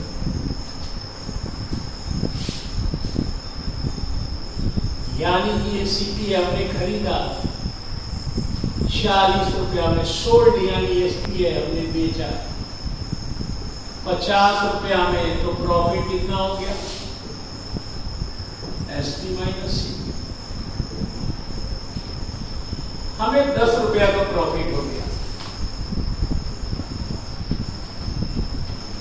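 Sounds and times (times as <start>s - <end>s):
low uneven rumbling: 0.0s - 29.0s.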